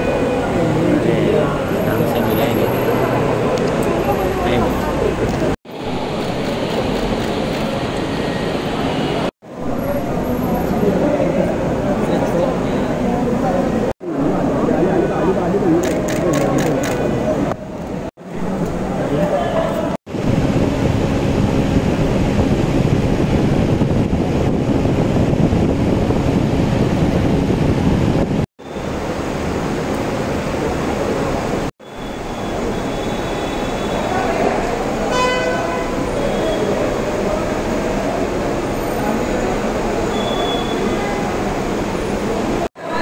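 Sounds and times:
crowd voices: 0:00.0 - 0:20.0, 0:32.4 - 0:43.0
traffic: 0:00.0 - 0:43.0
horn blast: 0:35.0 - 0:36.8.

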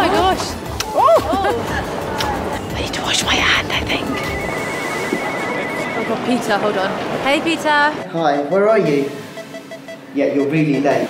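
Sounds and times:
background music: 0:00.0 - 0:11.0
phone ringing pulsing tone: 0:04.0 - 0:06.4.

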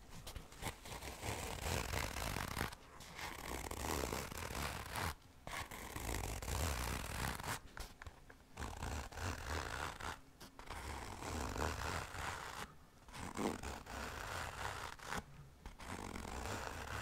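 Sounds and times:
fingers scratching padded fabric: 0:00.0 - 0:17.0.

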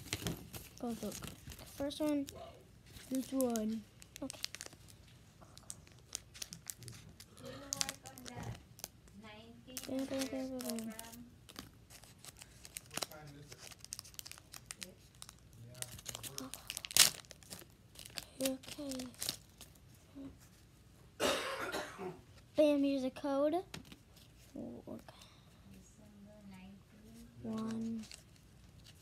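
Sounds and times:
foil wrapper crinkling and tearing: 0:00.0 - 0:19.8, 0:27.4 - 0:29.0.

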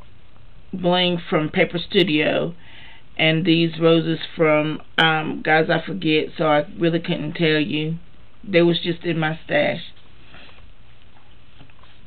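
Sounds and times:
low room hum and hiss: 0:00.0 - 0:12.0
soft paper rustle: 0:10.0 - 0:12.0.

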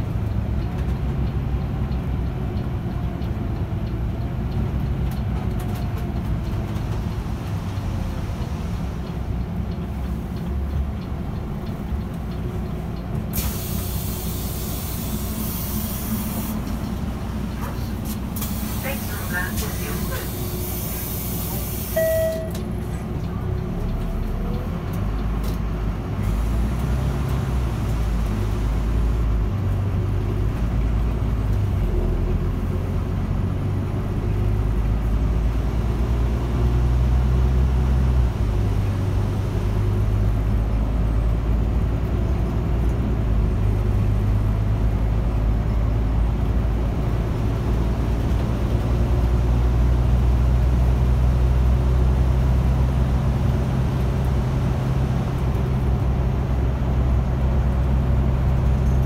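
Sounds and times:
bus engine running: 0:00.0 - 0:59.0
short beep: 0:21.9 - 0:22.8.

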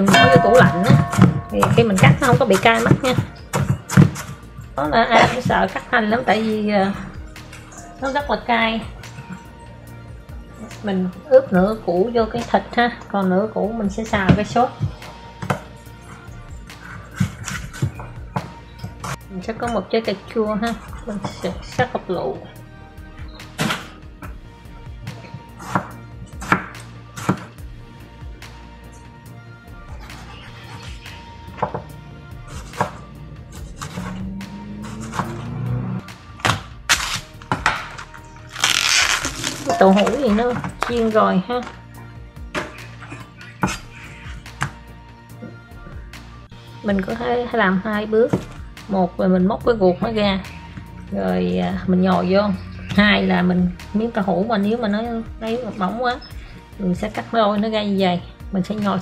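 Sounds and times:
background music: 0:00.0 - 0:59.0.

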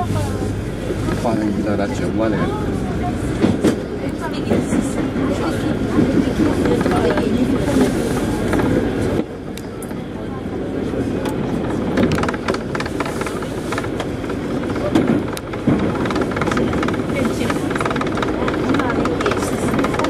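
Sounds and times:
train wheels rumbling on rails: 0:00.0 - 0:20.0
rail joint clicks and knocks: 0:03.3 - 0:10.0, 0:11.2 - 0:20.0.

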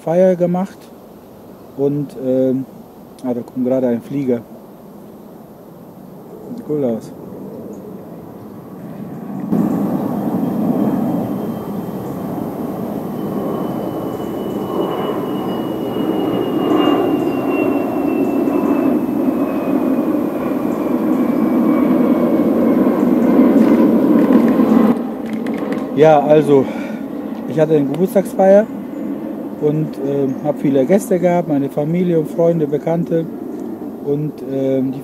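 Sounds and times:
jet airliner engine roar: 0:06.1 - 0:35.0
high whine sliding down: 0:09.4 - 0:25.1.

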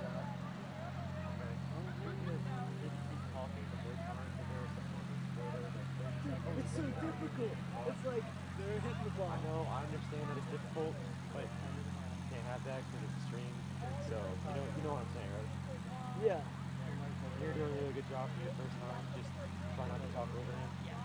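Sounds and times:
indistinct chatter of voices: 0:00.0 - 0:21.0
steady low hum: 0:00.0 - 0:21.0.

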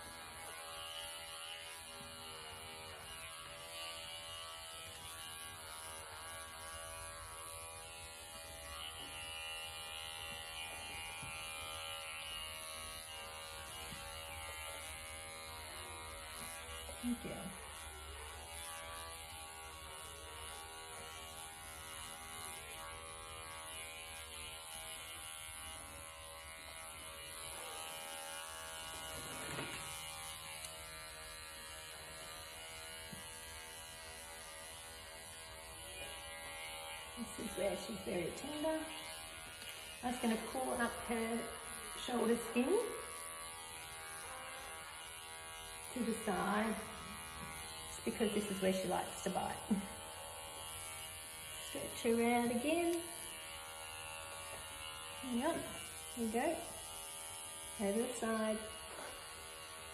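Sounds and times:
pet clipper humming: 0:00.0 - 0:59.9.

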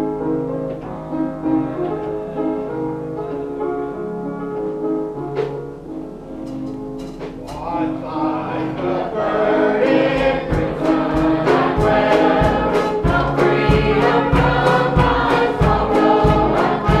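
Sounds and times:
instrumental accompaniment: 0:00.0 - 0:17.0
steady low beat: 0:07.4 - 0:17.0
choir singing gospel song: 0:07.6 - 0:17.0.

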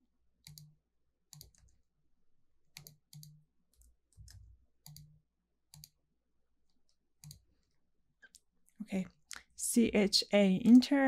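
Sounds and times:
computer mouse clicks: 0:00.4 - 0:01.8, 0:02.7 - 0:06.0, 0:06.6 - 0:08.5.

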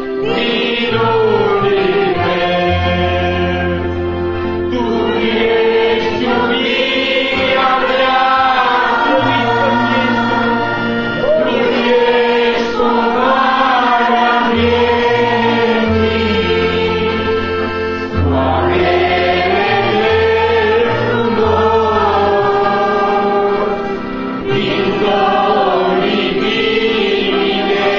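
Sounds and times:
group singing worship song: 0:00.0 - 0:27.9
held bass notes: 0:00.0 - 0:27.9.

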